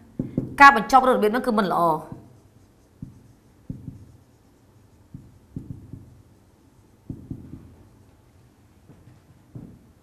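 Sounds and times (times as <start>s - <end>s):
marker writing on whiteboard: 0.0s - 8.6s.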